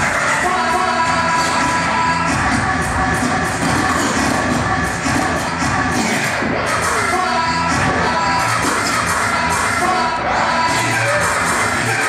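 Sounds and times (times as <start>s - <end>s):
hip-hop beat: 0.0s - 12.0s
turntable scratching: 0.0s - 12.0s.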